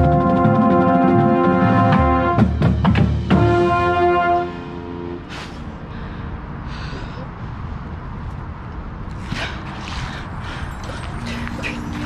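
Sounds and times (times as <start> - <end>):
brass band sustained chord: 0.0 - 5.4.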